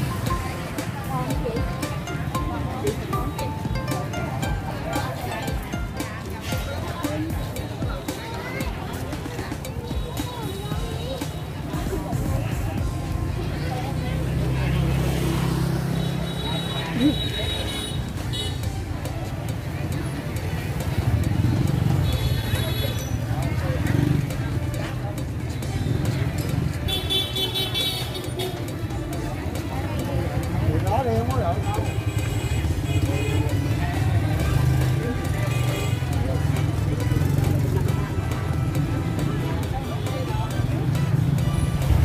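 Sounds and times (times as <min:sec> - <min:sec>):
many people talking: 0:00.0 - 0:42.0
motorbikes and cars running: 0:00.0 - 0:42.0
music playing: 0:00.0 - 0:42.0.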